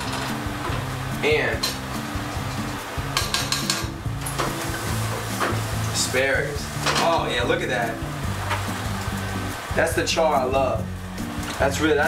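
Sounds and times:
background music: 0.0 - 12.0
metal tongs clicking on skillet: 2.5 - 3.9.

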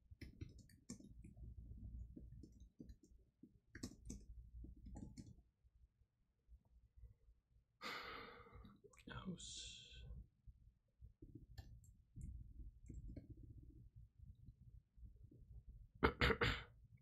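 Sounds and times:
keyboard typing: 0.2 - 5.4, 11.3 - 13.4.

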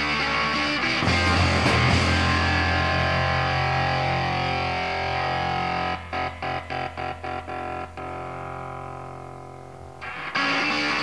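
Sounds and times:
distorted electric guitar: 0.0 - 11.0.

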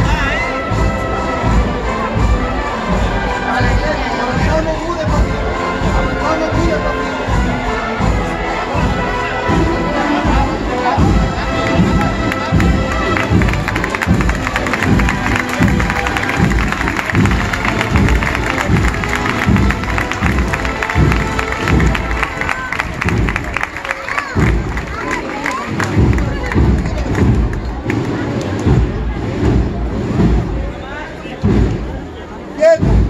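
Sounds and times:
held brass notes: 0.0 - 30.5
processional band playing a march: 0.0 - 30.6
crowd voices: 0.0 - 33.0
steady drumbeat: 0.0 - 33.0.

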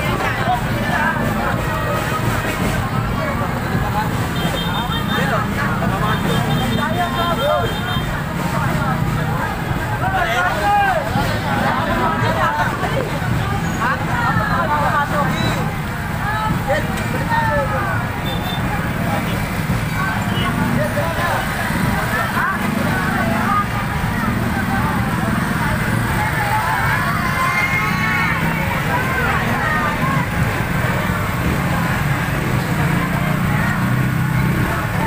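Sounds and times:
crowd talking and calling out: 0.0 - 35.0.

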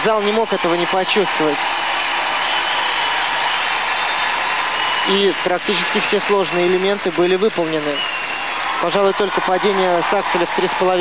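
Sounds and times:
arena crowd applauding: 0.0 - 11.0.

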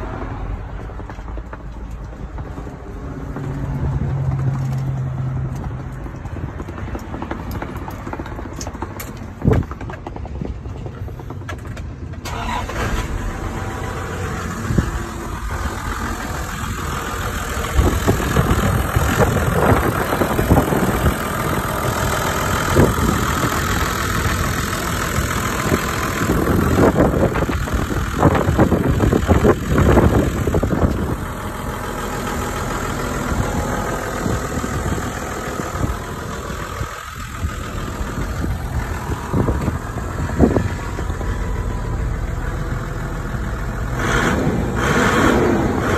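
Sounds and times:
car engine idling: 0.0 - 45.9.

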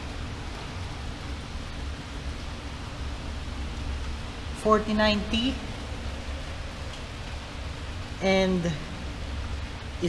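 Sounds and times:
steady rain hiss: 0.0 - 10.0.

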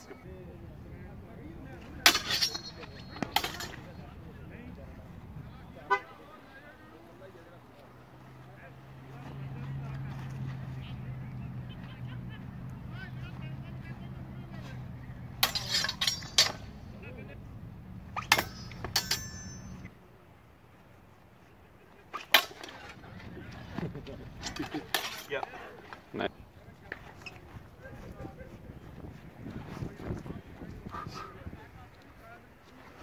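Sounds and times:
swords clashing with ringing: 2.0 - 3.9, 15.4 - 16.8, 18.2 - 19.9.

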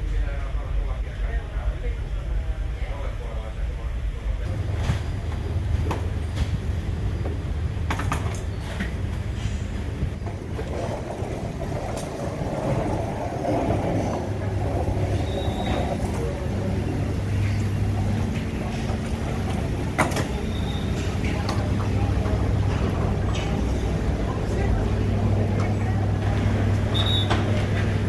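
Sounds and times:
low machinery hum: 0.0 - 28.0
wheeled suitcase rolling: 10.2 - 24.4.

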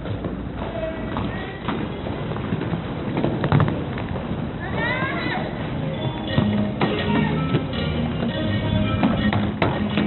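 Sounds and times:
roller skate wheels on wooden floor: 0.0 - 10.0.

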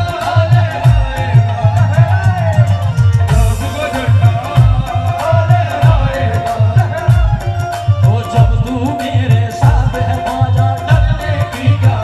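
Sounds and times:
driving drum beat: 0.0 - 12.0
harmonium melody: 0.0 - 12.0.

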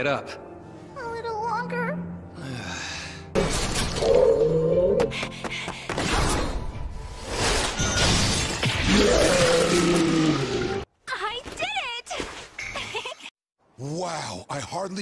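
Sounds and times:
anime soundtrack music: 0.0 - 11.0.

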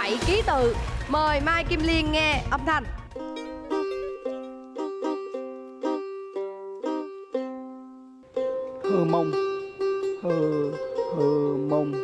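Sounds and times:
plucked lute melody: 3.1 - 12.0.

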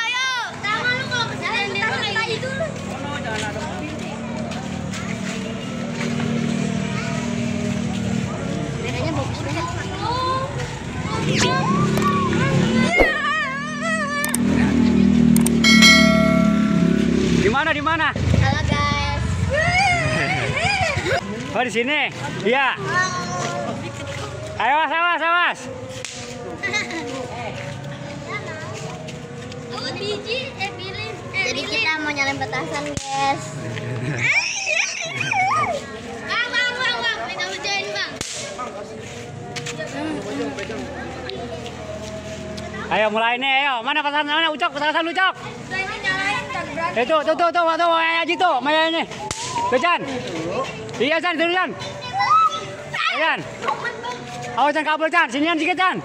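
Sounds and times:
vehicle engine running: 2.4 - 21.6
high steady tone: 15.5 - 17.8
children shrieking: 34.1 - 35.8, 52.2 - 53.2
children calling out: 34.1 - 37.6, 51.8 - 54.3
sharp crack: 38.2 - 38.5.

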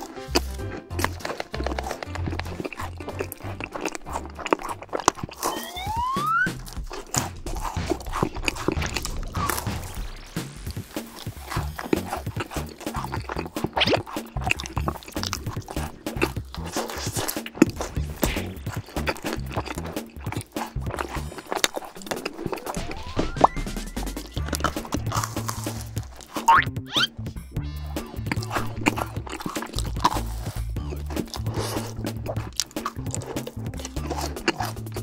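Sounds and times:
background music: 0.0 - 35.0
crunchy chewing mouth clicks: 0.0 - 35.0
cartoon boing sound effect: 5.4 - 6.6, 22.7 - 24.5, 26.5 - 27.8.

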